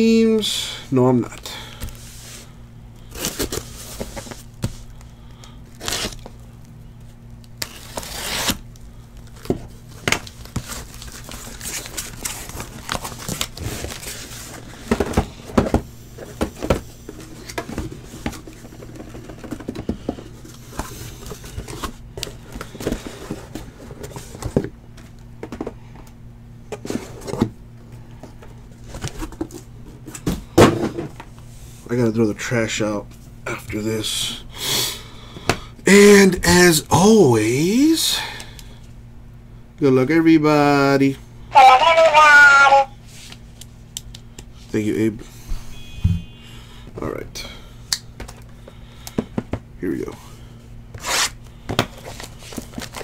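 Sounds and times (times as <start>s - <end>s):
packaging tearing: 5.7s - 6.3s, 7.6s - 8.6s.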